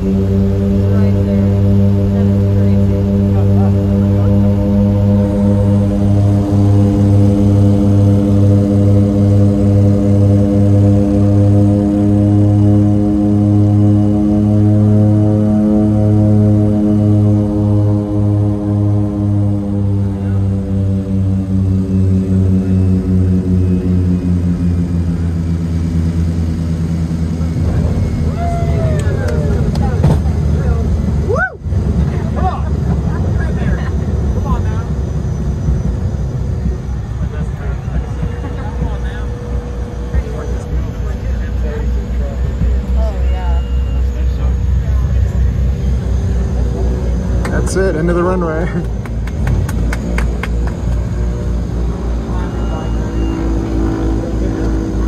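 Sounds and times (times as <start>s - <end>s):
turboprop engines droning: 0.0s - 55.0s.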